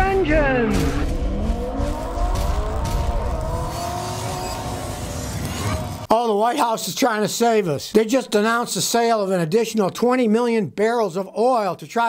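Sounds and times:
car engine revving: 0.6s - 6.1s.

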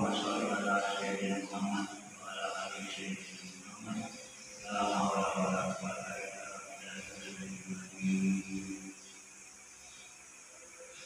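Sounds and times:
man calling to prayer: 0.0s - 8.9s.

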